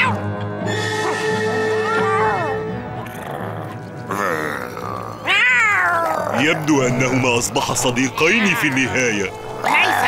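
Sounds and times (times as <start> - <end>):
cartoon creatures yowling: 4.1 - 6.8, 8.2 - 10.0.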